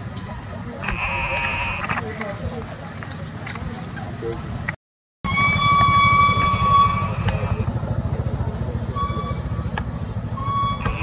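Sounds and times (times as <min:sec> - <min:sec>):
low engine rumble: 0:00.0 - 0:11.0
horn tooting: 0:05.3 - 0:07.8, 0:08.8 - 0:11.0.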